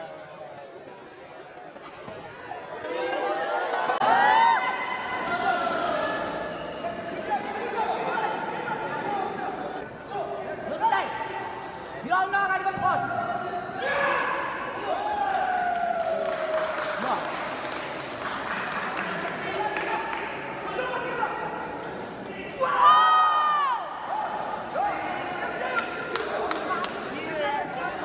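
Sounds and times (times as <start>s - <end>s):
people shouting and calling out: 2.6s - 16.0s.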